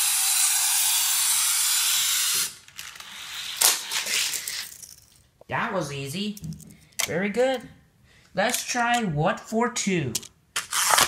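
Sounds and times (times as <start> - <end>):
toy car rolling on plastic track: 0.0 - 5.2.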